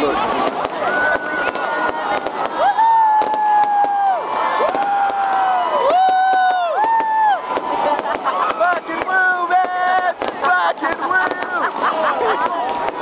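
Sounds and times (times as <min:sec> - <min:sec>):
fireworks crackling pops: 0:00.0 - 0:13.0
firework whistling tones: 0:00.4 - 0:11.8.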